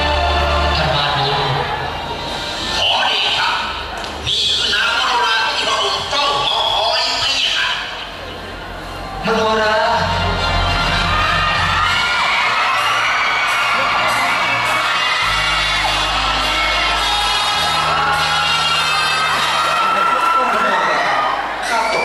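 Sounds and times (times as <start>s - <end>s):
audience whooping and cheering: 10.1s - 22.0s.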